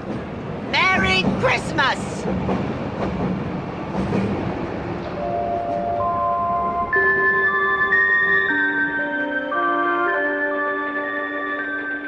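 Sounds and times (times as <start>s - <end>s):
passenger train rolling: 0.0s - 12.0s.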